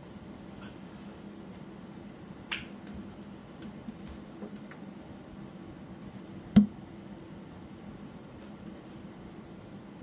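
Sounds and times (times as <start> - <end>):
low room hum: 0.0 - 10.0
finger snap: 2.5 - 3.4.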